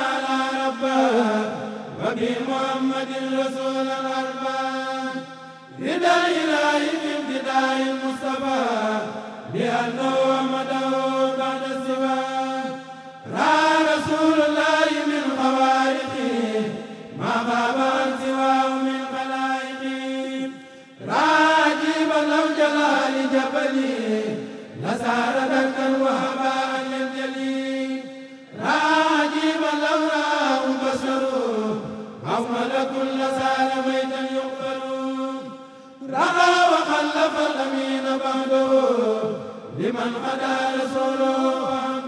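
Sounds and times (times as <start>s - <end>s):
men chanting unaccompanied: 0.0s - 42.0s.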